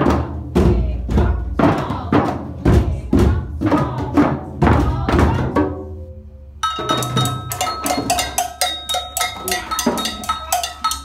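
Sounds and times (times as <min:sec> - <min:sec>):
clicking percussion beat: 0:06.6 - 0:11.0
hand drums beating: 0:06.6 - 0:11.0.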